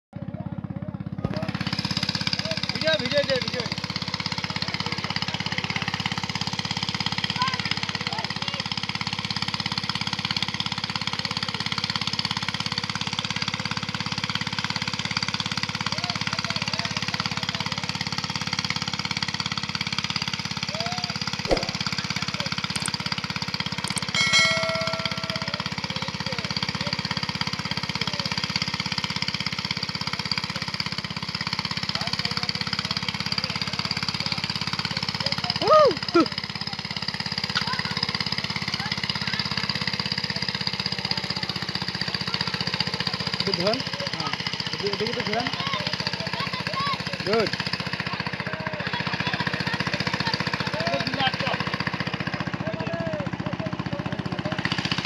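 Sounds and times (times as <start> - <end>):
small engine running: 0.2 - 55.0.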